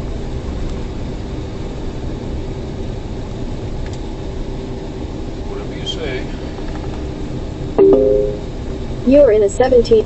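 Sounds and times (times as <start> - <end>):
electronic alert chime: 7.8 - 8.5.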